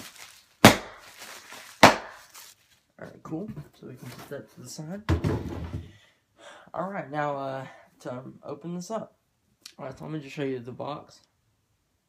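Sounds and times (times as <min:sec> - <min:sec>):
bubble wrap snapping: 0:00.0 - 0:02.6
bubble wrap crinkling: 0:00.0 - 0:02.9.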